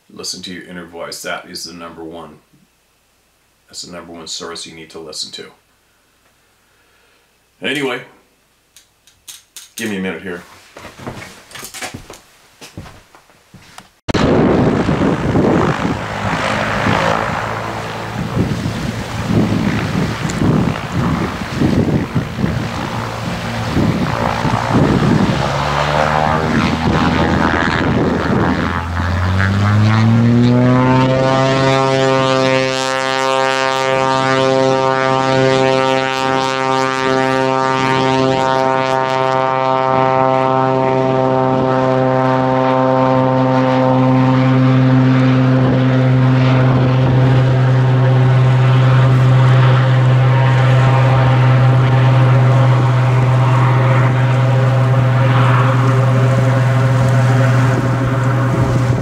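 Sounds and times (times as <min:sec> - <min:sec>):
plane engine and propeller drone: 0:14.1 - 0:59.0.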